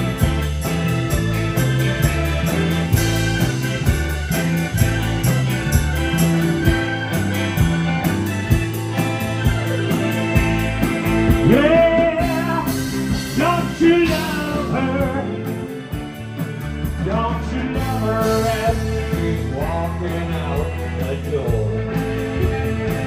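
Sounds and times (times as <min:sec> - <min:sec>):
sliding melodic line: 0:00.0 - 0:21.3
drums: 0:00.0 - 0:23.0
guitars: 0:00.0 - 0:23.0
keyboard: 0:00.0 - 0:23.0
walking bass line: 0:00.0 - 0:23.0.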